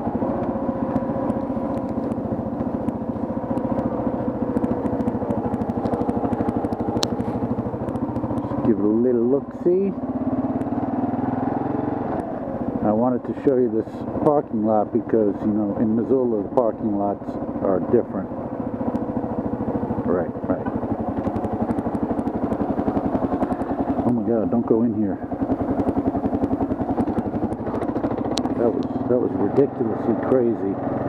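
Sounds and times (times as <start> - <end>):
motorcycle engine running: 0.0 - 31.0.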